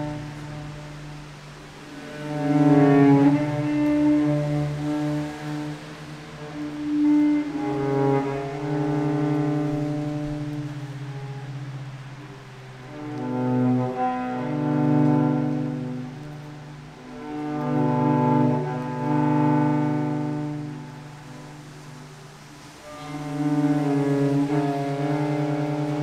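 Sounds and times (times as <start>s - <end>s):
bowed cello: 0.0s - 26.0s.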